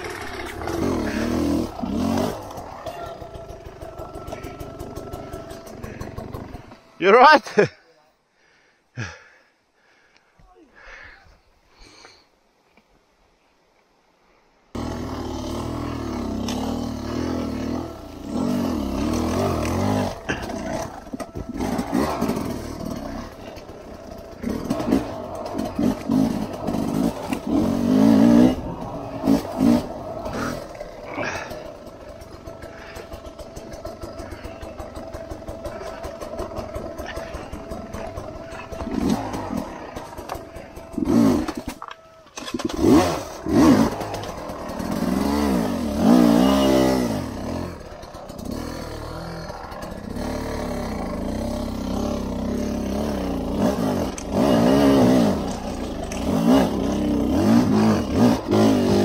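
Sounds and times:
dirt bike engine revving: 0.0s - 7.7s, 14.8s - 59.0s.

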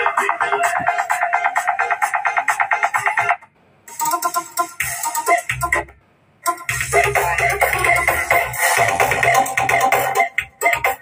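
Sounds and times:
music through small speaker: 0.0s - 11.0s
rapid repeated electronic notes: 0.0s - 11.0s.

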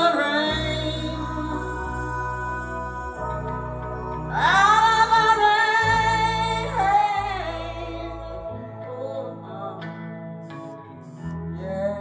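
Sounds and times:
instrumental song over loudspeakers: 0.0s - 12.0s.

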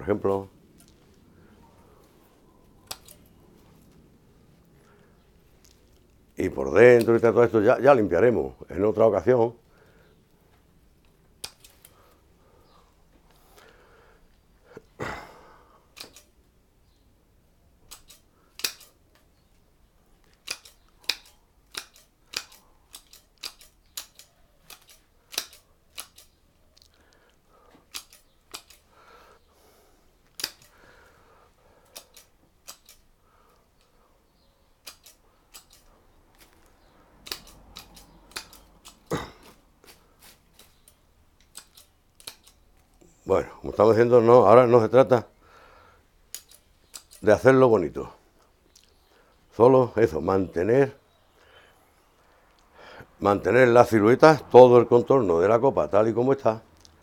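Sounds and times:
scissors snipping twigs: 2.8s - 3.3s, 6.8s - 7.4s, 11.0s - 12.1s, 15.9s - 16.3s, 17.8s - 19.0s, 20.2s - 26.9s, 27.8s - 28.9s, 30.3s - 30.8s, 31.8s - 33.1s, 34.8s - 43.0s, 46.3s - 47.3s.

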